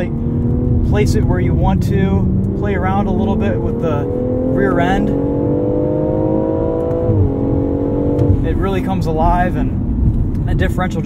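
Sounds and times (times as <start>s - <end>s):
car engine accelerating: 0.0s - 11.0s
tyre and road noise: 0.0s - 11.0s.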